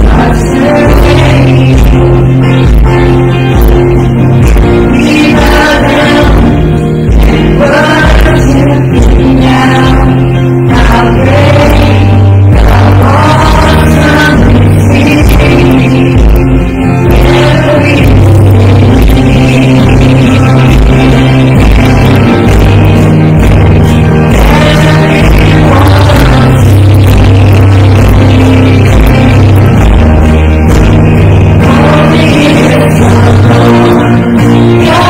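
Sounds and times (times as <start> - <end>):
woman singing into a microphone: 0.0 - 2.3, 4.5 - 21.8, 24.2 - 29.1, 31.6 - 35.0
electric guitar: 0.0 - 35.0
low bass notes: 0.0 - 35.0
people singing along: 0.0 - 35.0.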